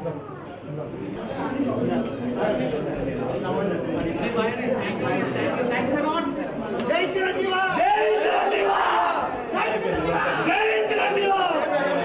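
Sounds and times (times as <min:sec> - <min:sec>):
crowd of men shouting: 0:07.2 - 0:12.0.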